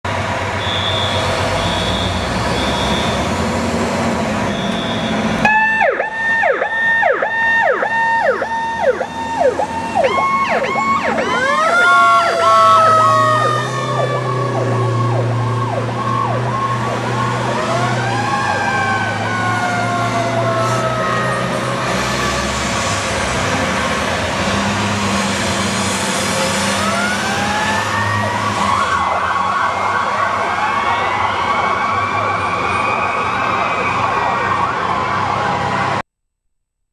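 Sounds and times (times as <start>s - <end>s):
fire engine sirens wailing: 0.1s - 36.0s.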